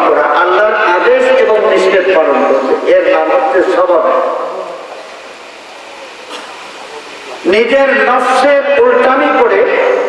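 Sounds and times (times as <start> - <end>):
man speaking amplified: 0.0 - 5.2, 5.8 - 10.0
steady background hiss: 0.0 - 10.0.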